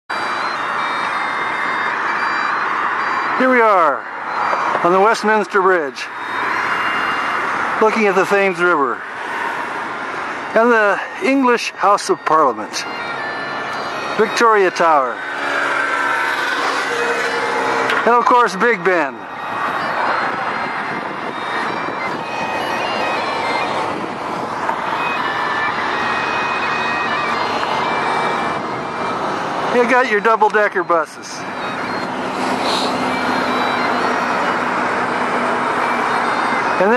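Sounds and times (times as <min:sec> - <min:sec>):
road traffic hiss: 0:00.2 - 0:36.9.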